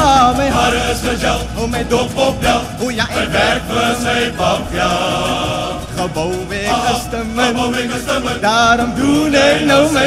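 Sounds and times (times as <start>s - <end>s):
male choir singing: 0.0s - 10.0s
male soloist singing: 0.0s - 10.0s.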